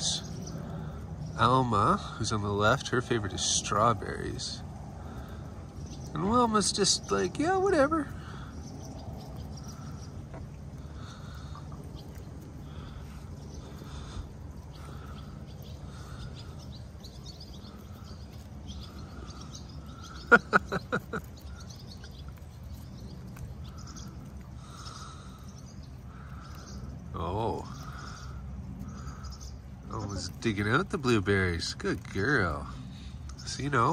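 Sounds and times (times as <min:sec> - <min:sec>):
birds chirping: 0:00.0 - 0:33.9
low steady hum: 0:00.0 - 0:33.9
person laughing: 0:20.1 - 0:21.4.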